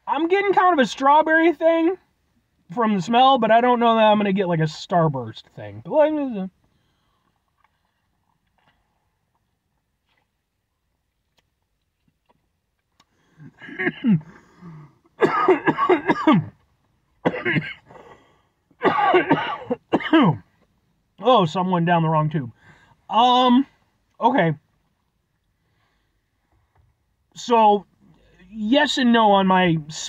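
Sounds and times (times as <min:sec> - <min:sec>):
man coughing hard: 0:13.4 - 0:14.4, 0:15.2 - 0:16.6, 0:17.2 - 0:18.0, 0:18.8 - 0:20.4.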